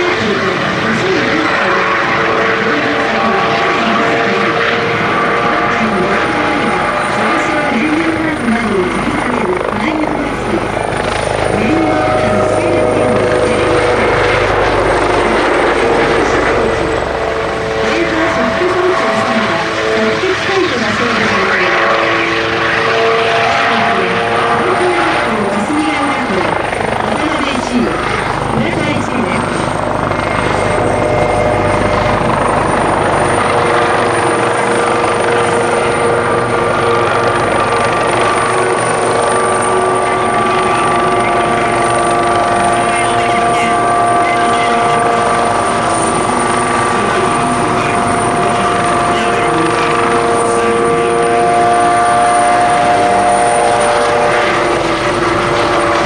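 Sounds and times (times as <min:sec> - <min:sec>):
helicopter flying overhead: 0:00.0 - 0:56.0.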